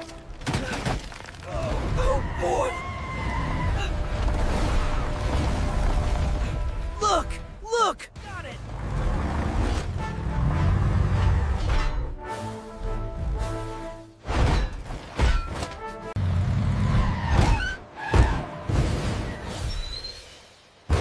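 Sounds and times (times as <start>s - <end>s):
dramatic music: 1.8s - 16.9s.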